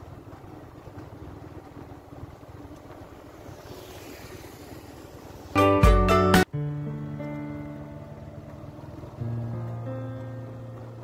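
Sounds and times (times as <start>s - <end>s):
low fluctuating road rumble: 0.0s - 11.0s.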